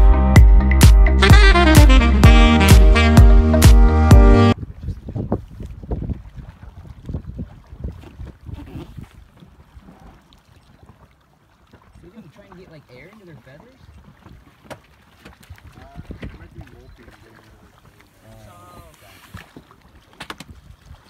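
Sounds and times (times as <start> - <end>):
wind buffeting microphone: 4.6 - 10.0, 15.3 - 17.1, 20.3 - 21.0
water lapping against boat: 4.6 - 21.0.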